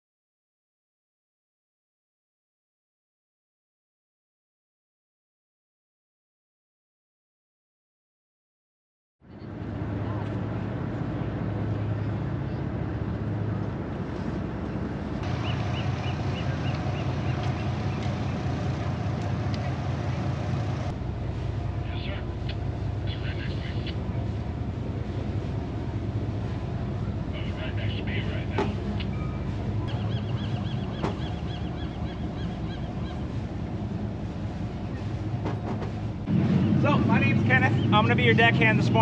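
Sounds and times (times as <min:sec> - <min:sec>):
steady low rumble: 0:09.2 - 0:39.0.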